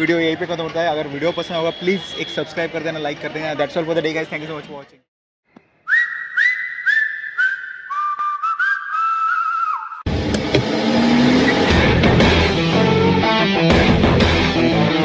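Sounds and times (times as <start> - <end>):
whistled tune over ticking beat: 5.9 - 10.1
rock music with electric guitar: 10.1 - 15.0.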